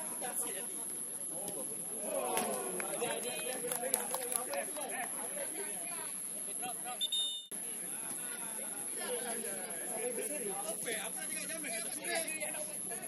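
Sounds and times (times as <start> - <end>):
players shouting: 1.4 - 3.6.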